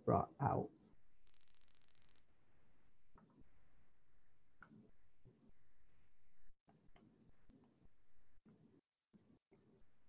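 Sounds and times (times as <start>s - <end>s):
high glittery electronic tones: 1.3s - 2.2s.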